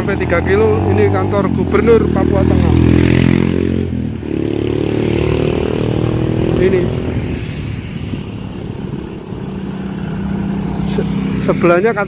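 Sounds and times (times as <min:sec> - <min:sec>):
motor scooters passing: 0:00.0 - 0:12.0.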